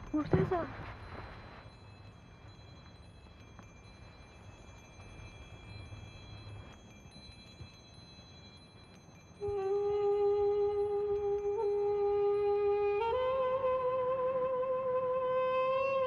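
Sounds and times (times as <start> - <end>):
wind chimes tinkling: 0.0 - 13.2.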